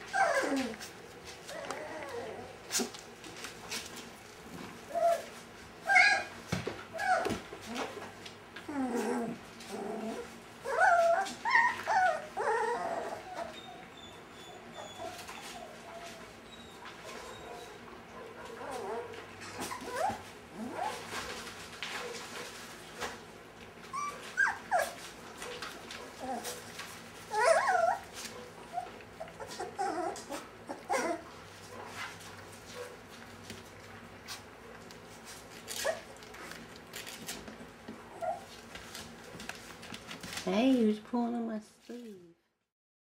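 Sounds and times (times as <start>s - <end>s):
puppies whining and yipping: 0.0s - 2.7s, 4.9s - 7.9s, 8.7s - 21.2s, 23.8s - 31.4s, 35.6s - 36.3s, 38.0s - 38.6s.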